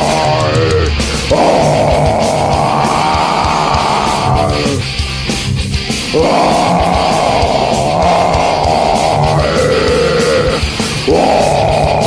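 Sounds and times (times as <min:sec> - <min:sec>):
distorted electric guitars: 0:00.0 - 0:12.0
drums playing: 0:00.0 - 0:12.0.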